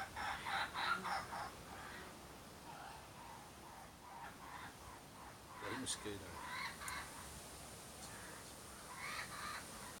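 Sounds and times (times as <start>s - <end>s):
young kookaburras squawking: 0.0s - 7.3s, 8.0s - 10.0s.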